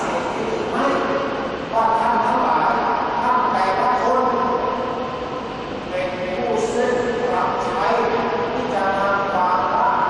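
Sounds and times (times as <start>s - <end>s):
man speaking over loudspeaker: 0.0s - 5.0s, 5.9s - 10.0s.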